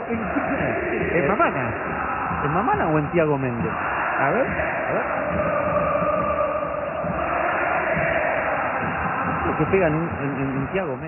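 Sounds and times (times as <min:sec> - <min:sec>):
stadium crowd chanting: 0:00.0 - 0:11.0.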